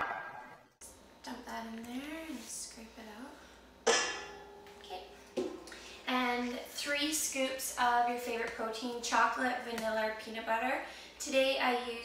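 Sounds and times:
metal bowl ringing when struck: 3.9s - 5.3s.

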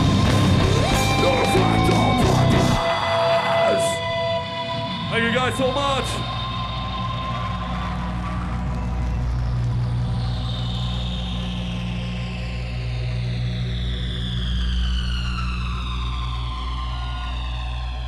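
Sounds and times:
high tones sliding downward: 0.0s - 9.2s
low electronic hum: 3.7s - 18.0s.

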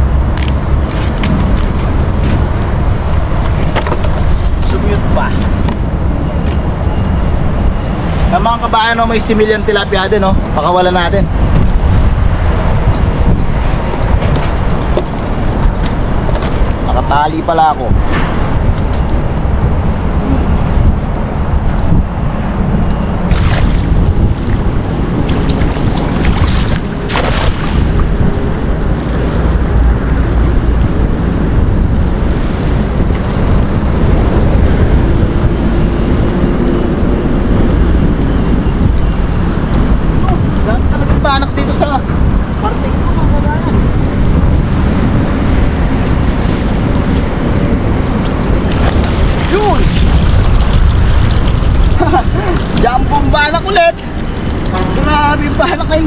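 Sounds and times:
wind buffeting microphone: 0.0s - 56.0s
water splashing: 23.3s - 28.2s, 48.2s - 52.8s.

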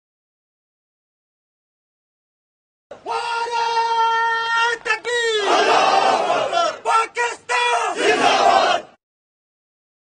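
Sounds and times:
man calling out: 2.9s - 5.6s, 6.5s - 8.0s
men shouting in unison: 5.3s - 9.0s.

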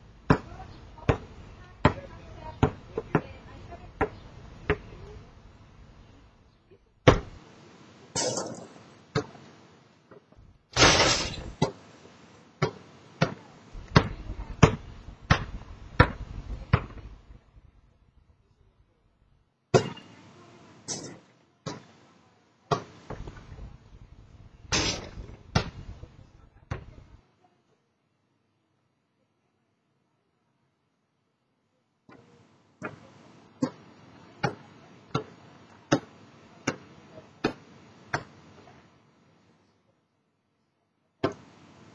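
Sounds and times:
basketball bouncing on concrete: 0.3s - 5.2s, 7.1s - 7.4s, 12.6s - 17.3s, 25.0s - 25.8s, 26.7s - 27.0s.

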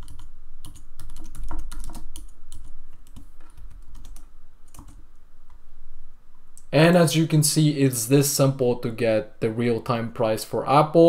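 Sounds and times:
computer keyboard typing: 0.0s - 5.0s.

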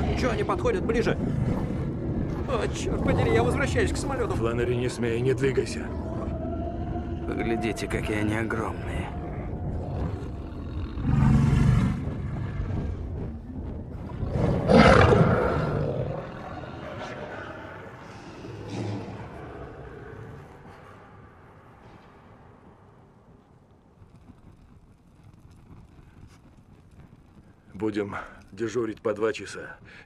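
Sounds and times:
wolves growling: 0.0s - 21.0s.

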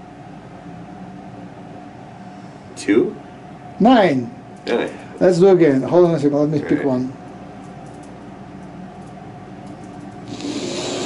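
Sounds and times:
low room hum: 0.0s - 11.0s
breathy hiss: 10.2s - 11.0s.

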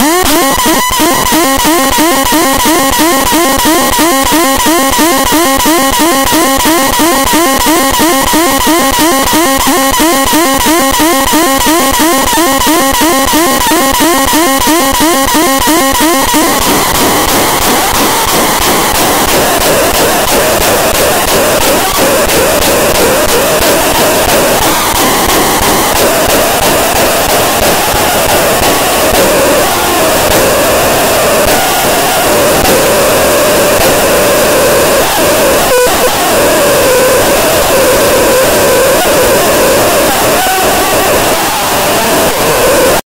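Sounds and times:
distorted noise music: 0.0s - 43.0s.

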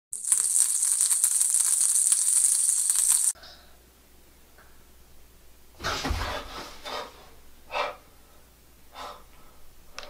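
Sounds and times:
fast high-pitched rattling: 0.1s - 3.4s.

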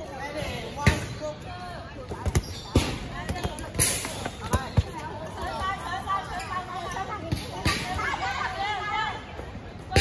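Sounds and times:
dodgeballs hitting: 2.0s - 5.6s.

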